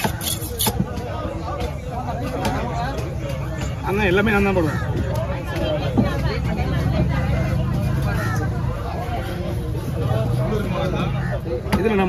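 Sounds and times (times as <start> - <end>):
market chatter: 0.0 - 12.0.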